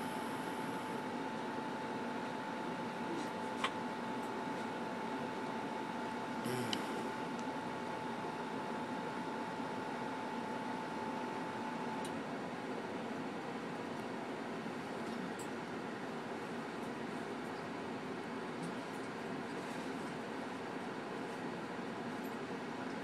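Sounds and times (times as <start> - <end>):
thin steady hum: 0.0 - 12.8.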